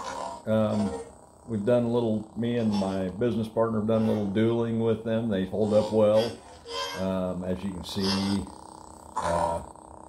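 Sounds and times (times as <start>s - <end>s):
lightsaber humming: 0.0s - 10.0s.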